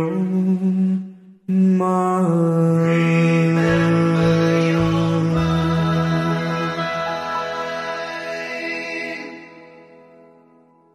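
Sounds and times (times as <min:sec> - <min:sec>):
low bass notes: 0:00.0 - 0:08.2
backing track chord: 0:03.4 - 0:10.9.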